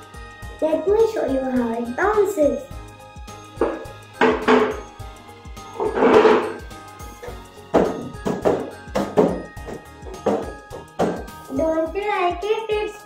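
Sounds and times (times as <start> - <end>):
background music: 0.0 - 13.0
balloon thumping on hard floor: 7.7 - 11.3.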